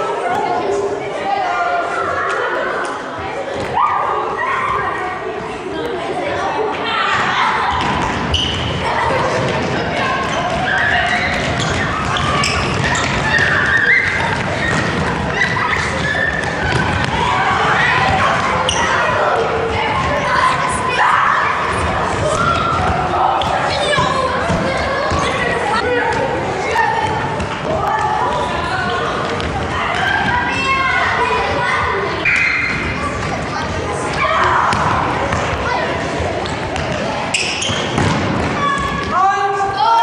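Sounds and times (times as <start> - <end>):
children shouting: 0.0 - 40.0
children running: 7.3 - 37.2.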